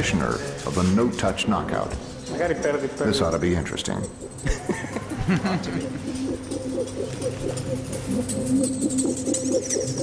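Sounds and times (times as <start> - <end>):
short wavering calls: 3.8 - 10.0.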